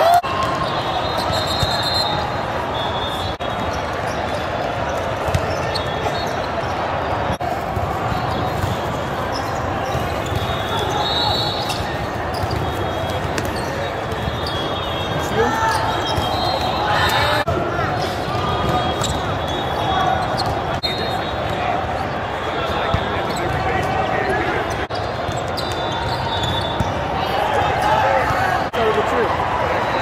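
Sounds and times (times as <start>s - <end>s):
balls bouncing off floor: 11.7s - 17.3s.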